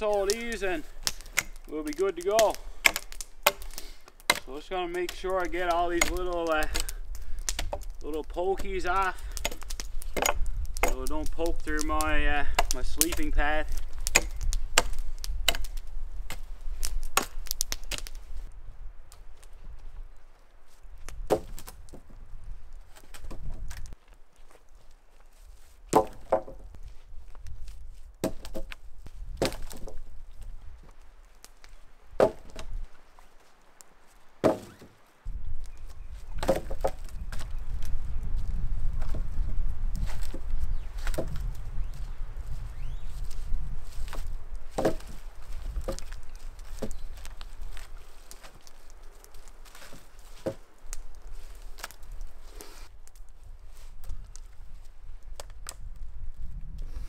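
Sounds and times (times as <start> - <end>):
axe chopping wood: 0.0 - 18.2, 21.1 - 22.0, 25.9 - 26.7, 28.2 - 28.8, 29.4 - 30.0, 32.2 - 32.8, 34.4 - 34.9, 36.4 - 37.5, 41.0 - 41.5, 44.0 - 48.7, 49.6 - 50.6.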